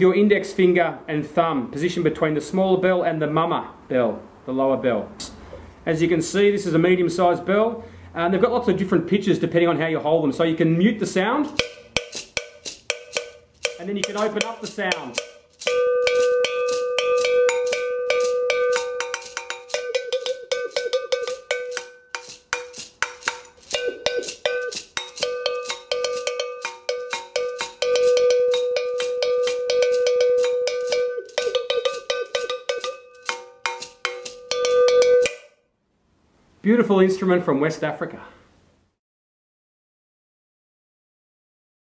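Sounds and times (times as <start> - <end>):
agogo bell struck with stick: 11.5 - 35.5.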